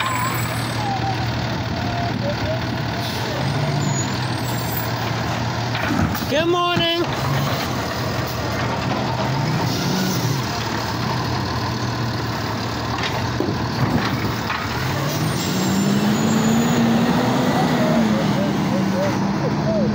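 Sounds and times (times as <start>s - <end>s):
garbage truck diesel engine running: 0.0s - 19.9s.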